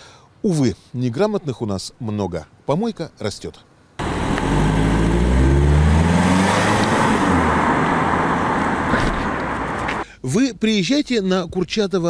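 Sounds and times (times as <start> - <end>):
car accelerating past: 4.0 - 10.0
tyre and road noise: 4.0 - 10.0.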